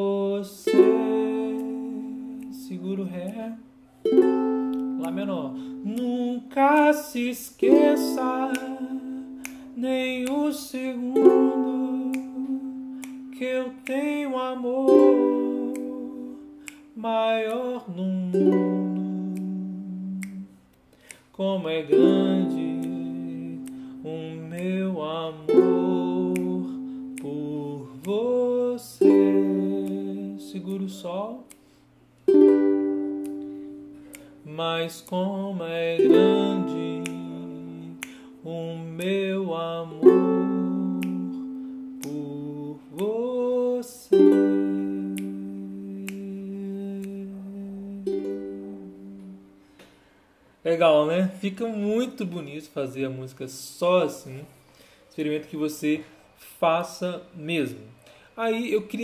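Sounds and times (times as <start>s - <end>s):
ukulele chord strum: 0.0s - 20.5s, 21.1s - 31.6s, 32.3s - 49.6s.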